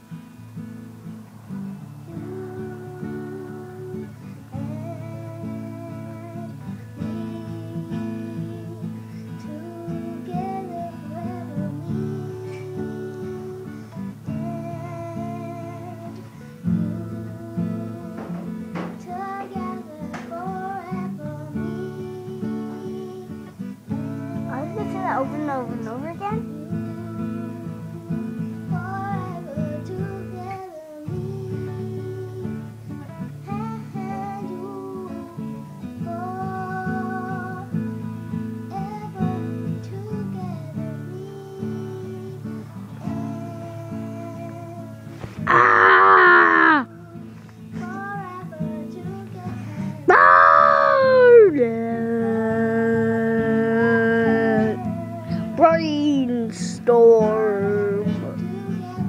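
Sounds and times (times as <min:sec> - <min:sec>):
acoustic guitar playing: 0:00.0 - 0:59.0
child singing: 0:01.8 - 0:59.0
loud falling cry: 0:45.4 - 0:46.9, 0:50.1 - 0:54.8
loud shout: 0:45.4 - 0:46.9, 0:50.1 - 0:54.8.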